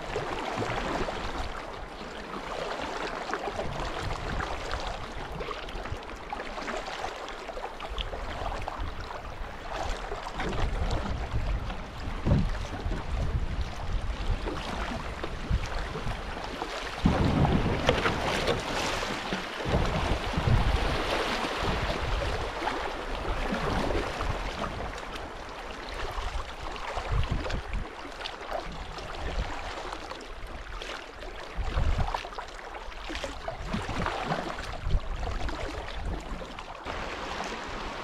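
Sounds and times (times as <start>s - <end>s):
river water over rocks: 0.0s - 38.0s
wind gusts on microphone: 3.5s - 6.0s, 8.0s - 25.0s, 27.0s - 27.9s, 31.6s - 32.2s.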